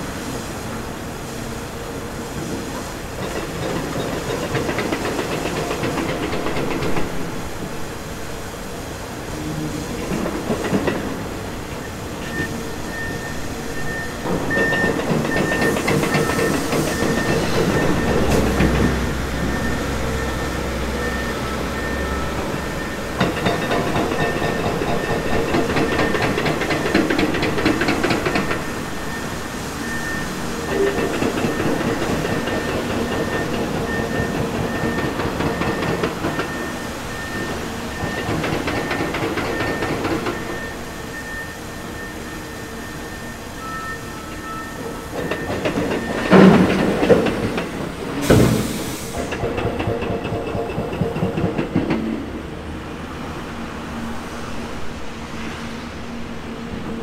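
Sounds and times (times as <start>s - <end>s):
truck reverse alarm beeping: 11.8s - 49.4s.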